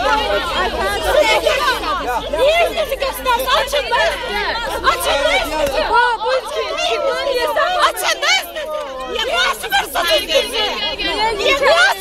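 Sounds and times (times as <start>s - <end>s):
crowd shouting and talking: 0.0s - 12.0s.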